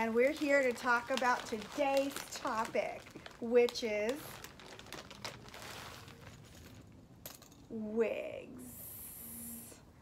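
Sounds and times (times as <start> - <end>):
plastic bag crinkling: 0.0 - 7.0.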